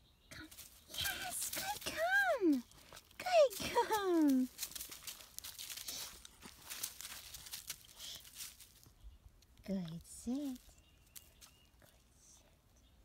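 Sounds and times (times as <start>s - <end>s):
dry leaves crunching underfoot: 0.5s - 8.9s, 10.2s - 11.6s.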